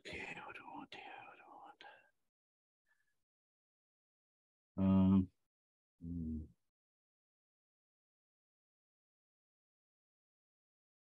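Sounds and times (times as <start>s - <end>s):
faint whispering voice: 0.0s - 2.1s.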